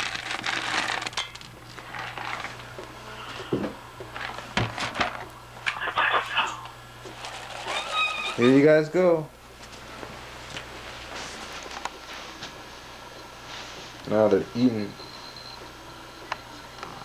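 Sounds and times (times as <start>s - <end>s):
rustling and handling noises: 0.0s - 2.9s.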